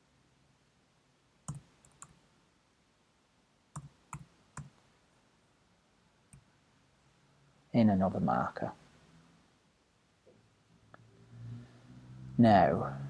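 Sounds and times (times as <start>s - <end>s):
mouse and keyboard clicks: 1.5s - 2.2s.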